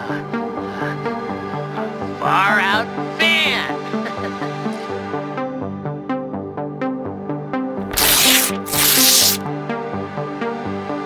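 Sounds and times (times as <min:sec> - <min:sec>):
paper ripping: 0:07.9 - 0:09.4.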